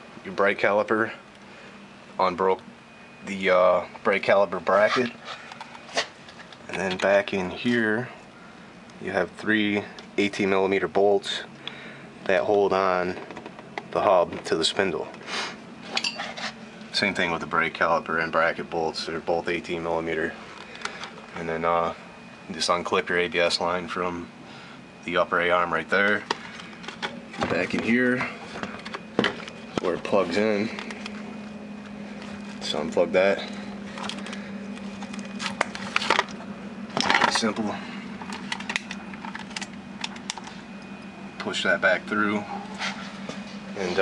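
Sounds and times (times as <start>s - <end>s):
steady low hum: 0.0s - 44.0s
handling noise: 26.2s - 32.8s.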